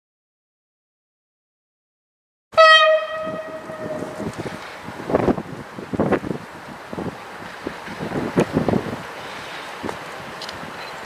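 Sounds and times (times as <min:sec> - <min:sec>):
wind buffeting microphone: 0:02.6 - 0:11.0.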